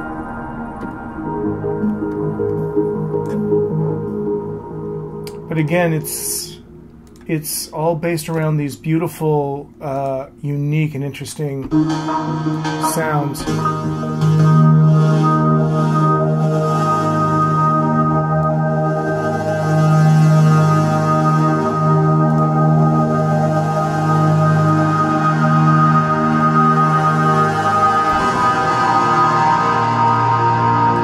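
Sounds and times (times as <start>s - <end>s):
synthesizer held low note: 0.0s - 31.0s.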